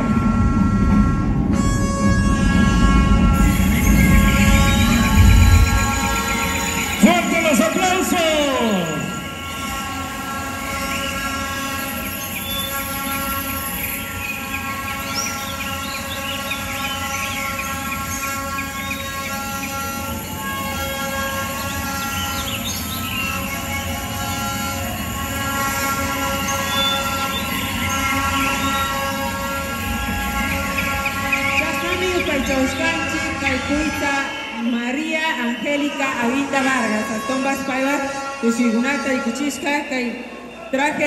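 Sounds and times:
sustained synth chord: 0.0 - 34.4
chirping bird-like calls: 3.4 - 33.4.

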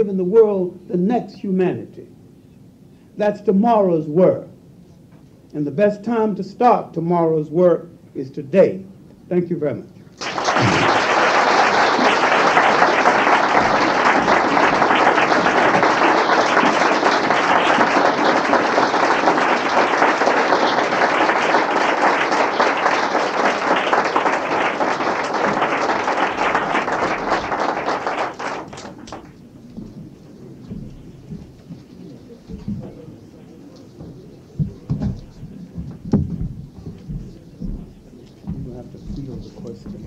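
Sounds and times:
audience applauding: 10.2 - 29.4.

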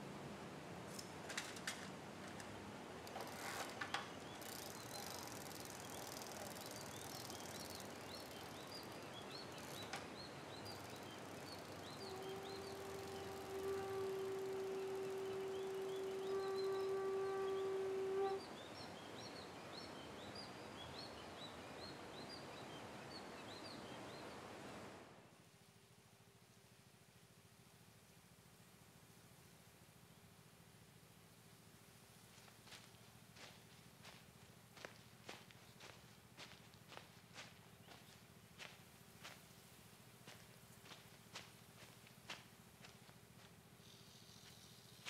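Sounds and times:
small birds chirping: 3.1 - 24.3, 32.4 - 45.0.

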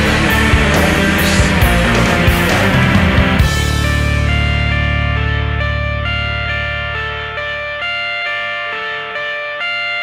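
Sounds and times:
rock guitar melody: 0.0 - 10.0.

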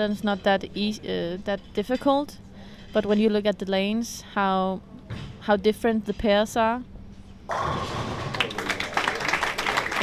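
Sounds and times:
bowling ball hitting pins: 7.5 - 8.8
audience clapping: 8.2 - 10.0.

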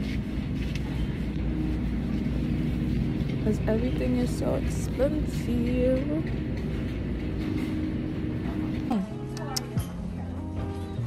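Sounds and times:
store interior hum: 0.0 - 11.0.

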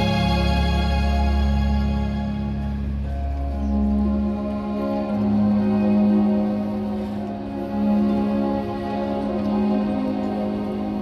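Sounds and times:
orchestra playing slow chords: 0.0 - 11.0.

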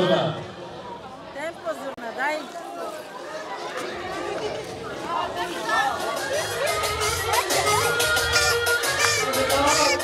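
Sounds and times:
party guests chattering: 0.0 - 10.0
dance music with drum beat: 6.1 - 10.0.

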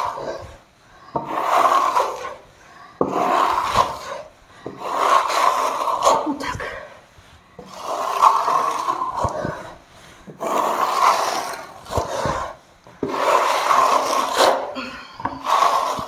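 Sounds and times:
trowel scraping across plaster: 0.0 - 16.0.

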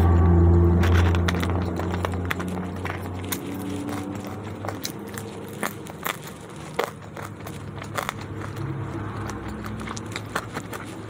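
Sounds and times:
chewing fries: 0.0 - 11.0
crisp crackles: 0.1 - 11.0.

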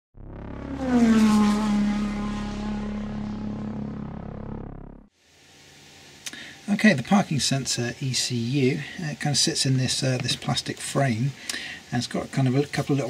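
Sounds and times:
pitched tone sliding down: 0.2 - 5.1.

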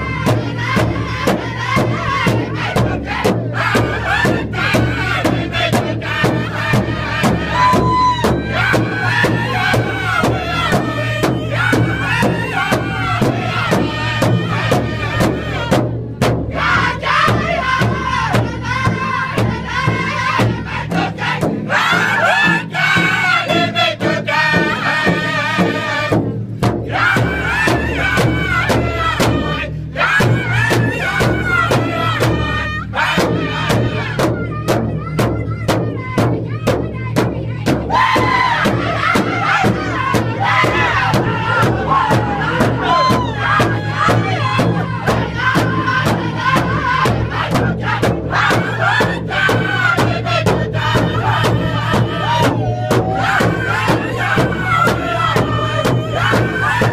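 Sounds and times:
large drum struck in unison: 0.0 - 56.9
men singing in high voices: 0.0 - 56.9.

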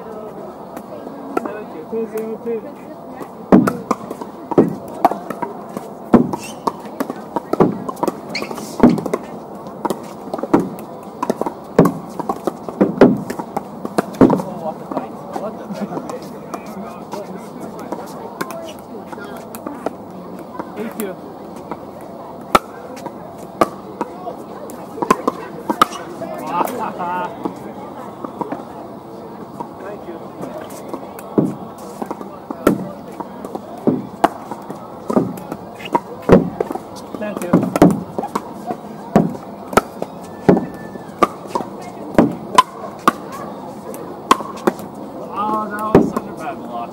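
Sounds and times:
paddles striking pickleball: 3.2 - 15.1, 15.9 - 21.8, 22.4 - 27.6, 30.6 - 46.9.

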